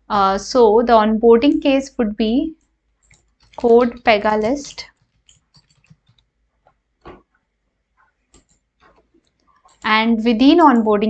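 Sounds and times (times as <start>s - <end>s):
keyboard keystrokes: 3.0s - 6.3s.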